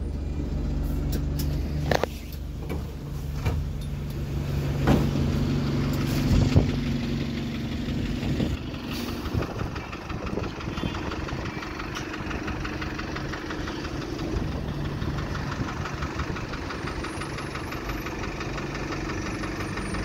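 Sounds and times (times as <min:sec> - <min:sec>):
bus diesel engine idling: 0:00.0 - 0:20.0
street traffic: 0:00.0 - 0:20.0.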